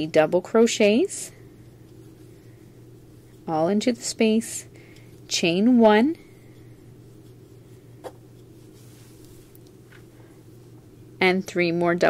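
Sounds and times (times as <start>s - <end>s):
low background hum: 0.0s - 12.0s
yarn rubbing on crochet hook: 0.0s - 12.0s.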